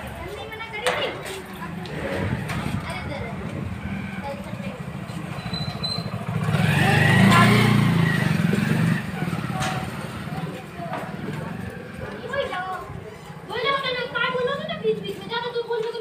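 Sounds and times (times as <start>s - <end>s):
children's voices: 0.0s - 5.4s, 6.2s - 16.0s
engine running low: 1.6s - 12.3s.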